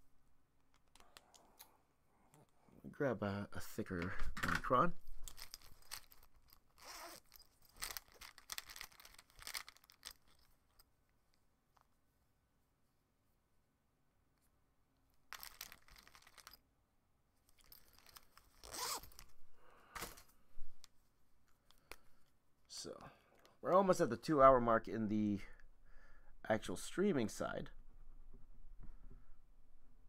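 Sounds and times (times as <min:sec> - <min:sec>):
rustling and scraping of pens: 0:00.6 - 0:02.6, 0:03.8 - 0:11.9, 0:15.3 - 0:16.6, 0:17.4 - 0:22.4.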